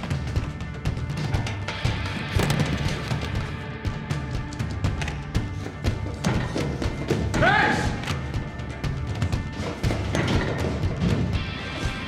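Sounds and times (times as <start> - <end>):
running footsteps on stairs: 0.0 - 11.4
tense film score: 0.0 - 12.0.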